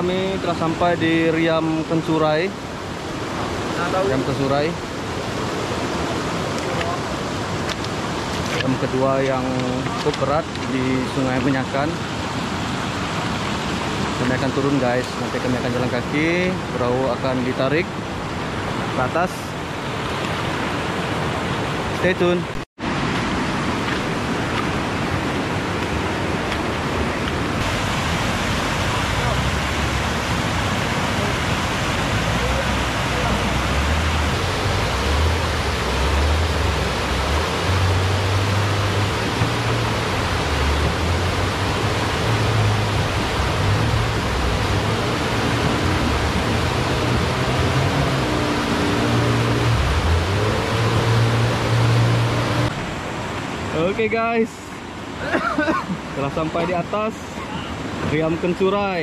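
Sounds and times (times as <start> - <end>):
river rapid rushing: 0.0 - 59.0.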